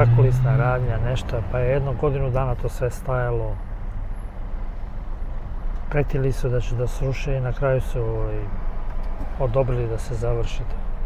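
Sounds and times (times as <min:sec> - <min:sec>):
cabin and road noise: 0:00.0 - 0:11.0
car engine idling: 0:00.0 - 0:11.0.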